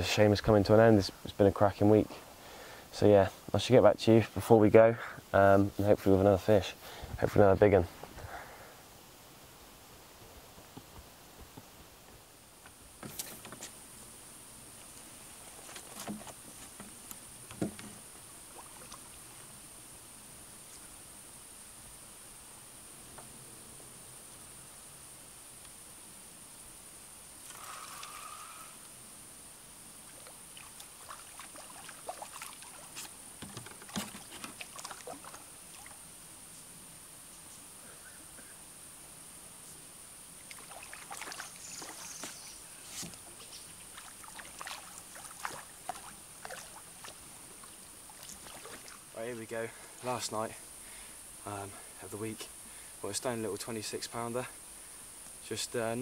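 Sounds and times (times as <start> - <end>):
fish splashing at water surface: 40.5 - 42.1.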